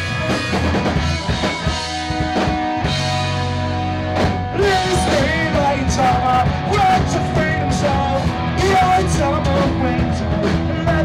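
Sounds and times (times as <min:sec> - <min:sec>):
bass guitar: 0:00.0 - 0:11.0
drum kit: 0:00.0 - 0:11.0
electric guitar: 0:00.0 - 0:11.0
man singing: 0:04.5 - 0:11.0.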